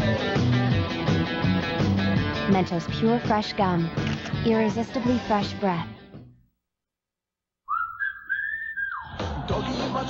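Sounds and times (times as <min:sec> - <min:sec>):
person whistling: 0:07.7 - 0:09.2.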